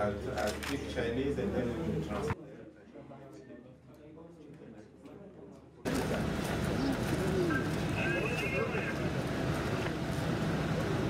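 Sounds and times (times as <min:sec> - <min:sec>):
outdoor background noise: 0:05.9 - 0:11.0
dove cooing: 0:06.6 - 0:07.9.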